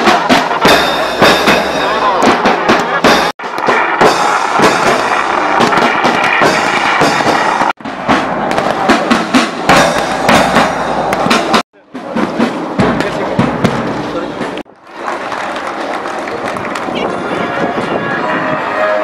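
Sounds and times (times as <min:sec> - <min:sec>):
firecracker bangs: 0:00.0 - 0:18.0
marching band drums: 0:00.0 - 0:18.7
crowd voices: 0:00.0 - 0:19.0.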